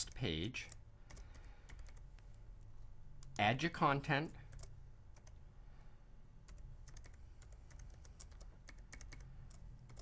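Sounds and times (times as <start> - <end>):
computer keyboard typing: 0.0 - 2.1, 4.4 - 5.4, 6.4 - 10.0
low steady hum: 0.0 - 10.0.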